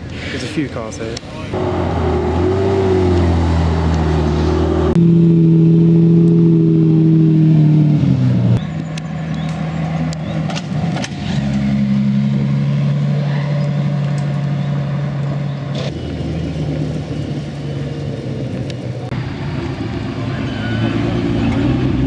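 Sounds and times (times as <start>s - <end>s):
car engines at low revs: 0.0s - 22.0s
car engine driving by: 1.4s - 22.0s.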